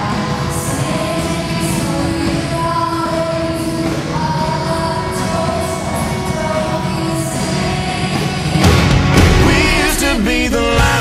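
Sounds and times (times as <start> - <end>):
pop-country band playing: 0.0 - 11.0.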